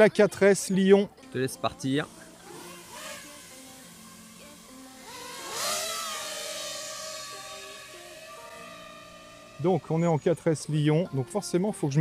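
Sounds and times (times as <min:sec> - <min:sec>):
quadcopter motors whining: 0:01.5 - 0:11.4.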